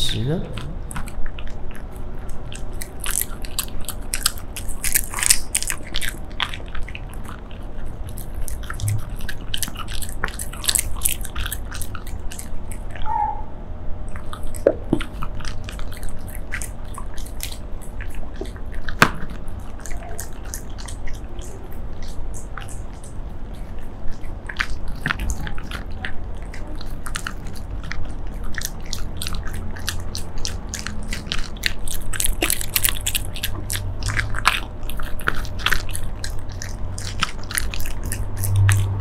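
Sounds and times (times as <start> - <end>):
dog chewing treats: 0.0 - 39.0.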